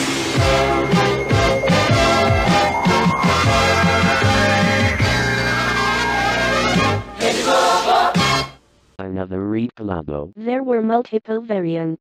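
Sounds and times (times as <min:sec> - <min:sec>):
short tv jingle: 0:00.0 - 0:07.7.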